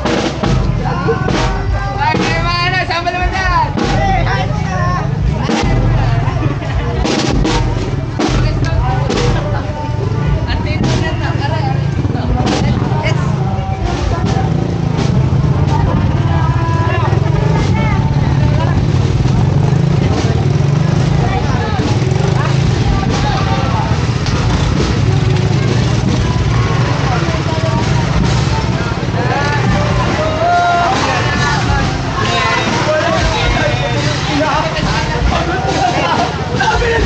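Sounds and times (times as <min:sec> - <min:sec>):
crowd chattering: 0:00.0 - 0:37.0
motorcycle engines: 0:00.0 - 0:37.0.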